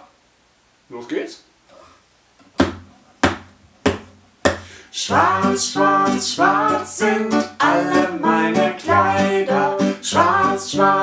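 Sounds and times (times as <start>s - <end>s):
acoustic guitar strums: 2.4s - 11.0s.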